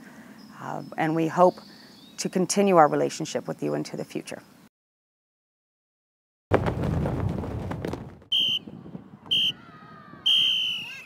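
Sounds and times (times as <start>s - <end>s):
referee's whistle blasts: 8.3s - 8.7s, 9.3s - 9.6s, 10.2s - 11.0s.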